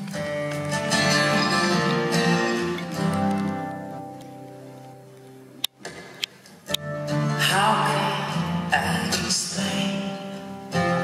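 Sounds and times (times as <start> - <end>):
acoustic guitar chord strummed: 0.0 - 5.5, 6.6 - 11.0.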